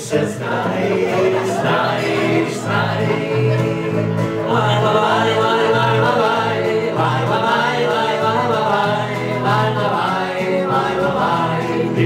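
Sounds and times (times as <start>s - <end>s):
acoustic guitars: 0.0s - 12.0s
group singing in harmony: 0.0s - 12.0s.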